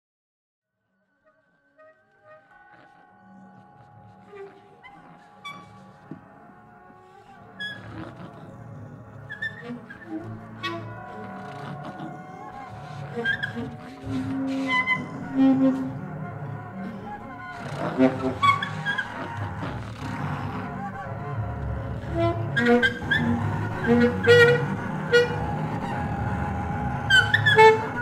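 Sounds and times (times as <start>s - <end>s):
acoustic ensemble playing: 7.8s - 28.0s.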